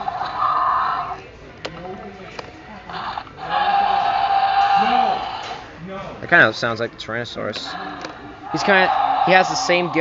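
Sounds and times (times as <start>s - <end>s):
electronic toy dinosaur roar: 2.9s - 5.6s, 7.7s - 10.0s.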